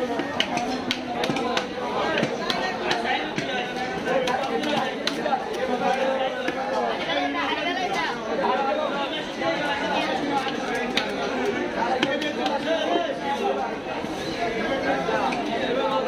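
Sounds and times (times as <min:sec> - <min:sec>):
chatter of many voices: 0:00.0 - 0:16.0.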